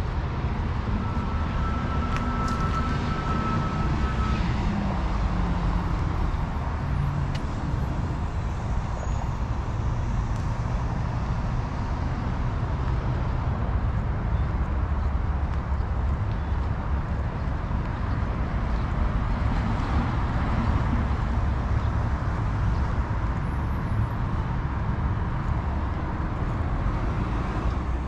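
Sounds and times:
road traffic rumble: 0.0s - 28.0s.

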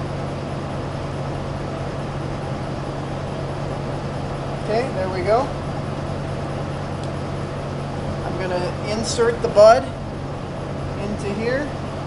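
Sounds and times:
steady mechanical drone: 0.0s - 12.0s.

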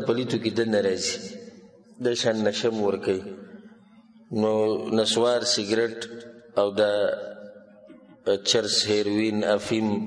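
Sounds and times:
man speaking: 0.0s - 3.5s, 4.3s - 7.3s, 8.2s - 10.0s.

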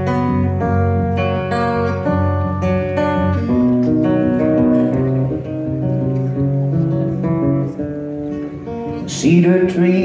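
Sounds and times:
acoustic guitar playing solo: 0.0s - 10.0s.

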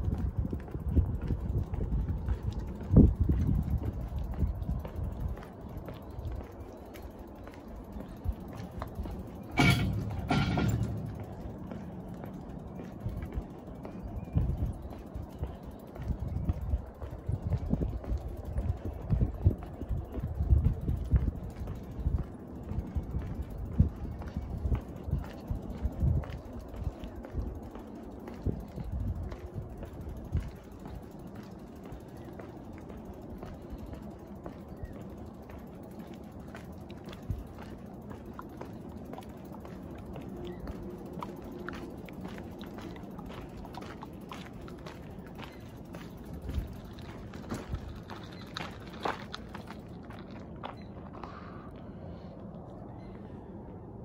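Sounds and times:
bicycle rolling on bridge deck: 0.0s - 54.0s.

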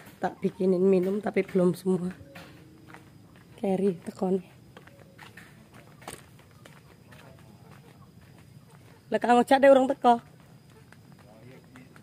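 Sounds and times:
footsteps on a dirt path: 0.0s - 12.0s.

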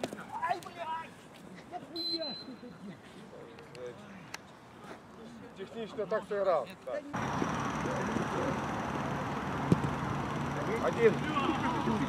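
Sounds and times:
football players shouting: 10.4s - 12.0s.

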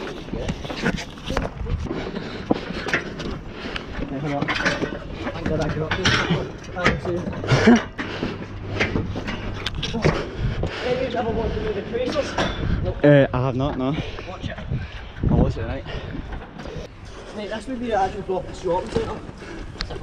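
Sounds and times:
footsteps: 0.0s - 20.0s.

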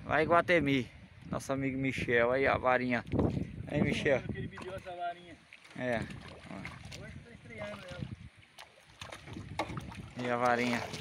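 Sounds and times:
fish splashing at water surface: 7.6s - 11.0s.

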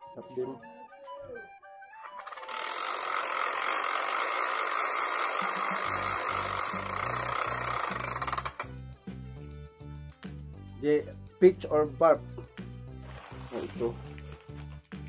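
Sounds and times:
loud even rattling: 2.1s - 8.7s.

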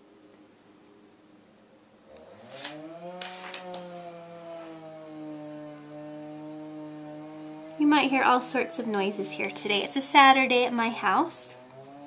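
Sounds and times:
power saw cutting wood: 2.1s - 12.0s.

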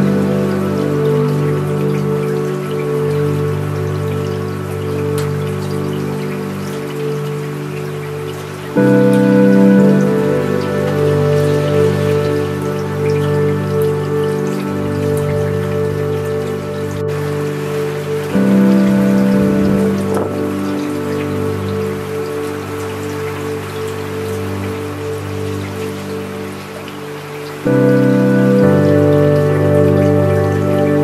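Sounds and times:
slow ambient music: 0.0s - 31.0s
steady rain falling: 0.0s - 31.0s.

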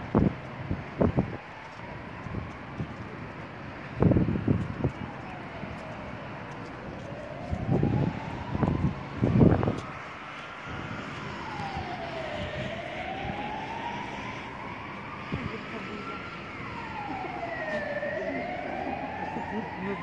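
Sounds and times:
emergency siren wailing: 0.0s - 20.0s
wind buffeting microphone: 0.0s - 20.0s.

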